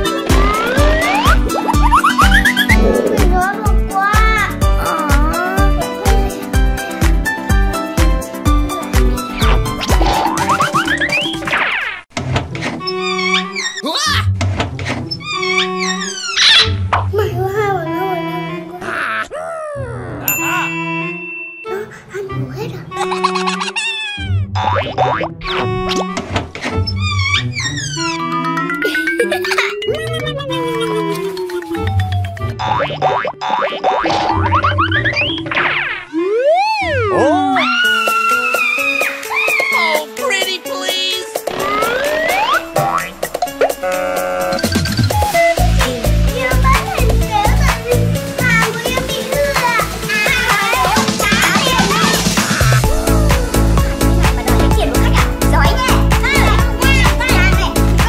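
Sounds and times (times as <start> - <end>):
children's music: 0.0 - 11.6, 15.2 - 18.8, 20.3 - 26.4, 27.0 - 35.4, 36.2 - 58.0
cascade of falling tones: 0.1 - 3.5
cartoon boing glides: 0.2 - 3.5, 23.9 - 26.2, 27.8 - 39.8, 41.5 - 45.4
rising pitch sweeps: 0.2 - 3.5
held high tone: 20.3 - 22.0.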